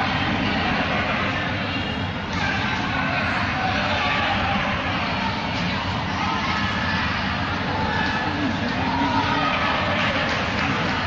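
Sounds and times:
crowd din in sports hall: 0.0 - 11.0.

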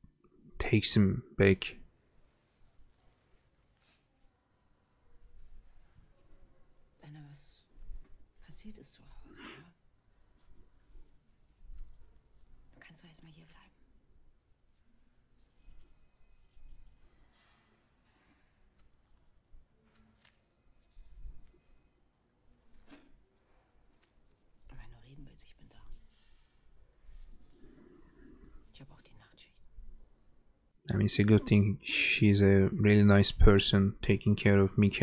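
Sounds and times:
hushed tv dialogue: 22.9 - 35.0.

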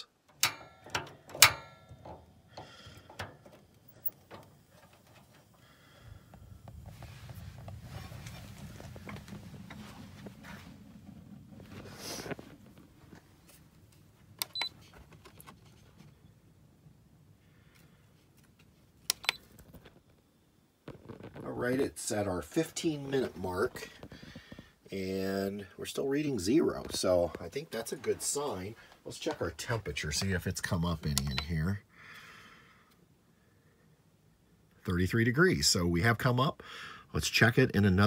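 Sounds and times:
heater control knob clicks: 0.3 - 2.2, 19.1 - 19.4
faint low rumble: 2.0 - 14.4.

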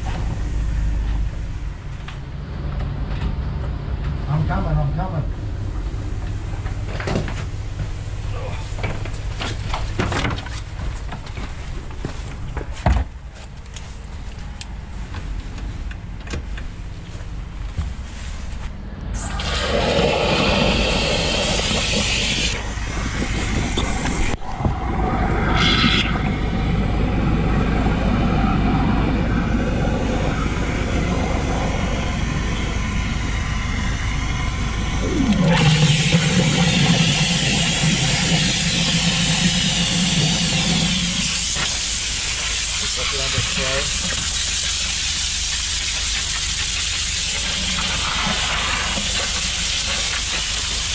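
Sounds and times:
engine hum: 0.0 - 50.9
water jet rushing hiss: 19.2 - 24.4, 30.5 - 50.9
low tone sliding down: 22.5 - 35.7.

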